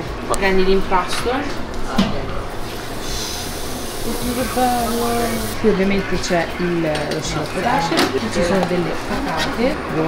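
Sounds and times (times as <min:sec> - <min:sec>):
room hum: 0:00.0 - 0:10.0
batter hissing on hot plate: 0:02.6 - 0:05.7.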